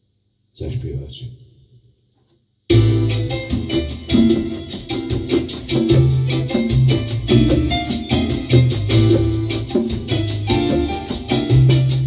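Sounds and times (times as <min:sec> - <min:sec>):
salsa band music: 0:02.7 - 0:12.0.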